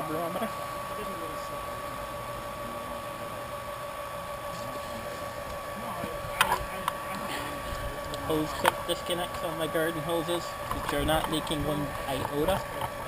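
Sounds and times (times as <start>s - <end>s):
electric pump motor hum: 0.0s - 13.0s.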